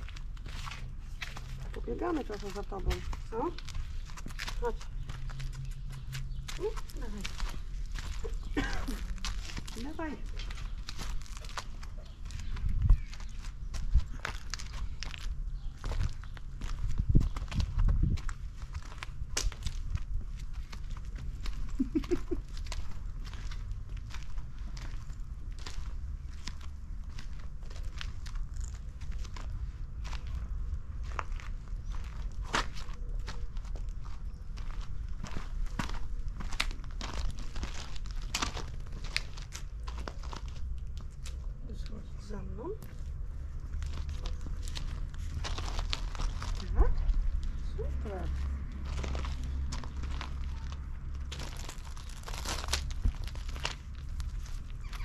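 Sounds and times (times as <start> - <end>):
footsteps on paved path: 0.0 - 55.0
steady low rumble: 0.0 - 55.0.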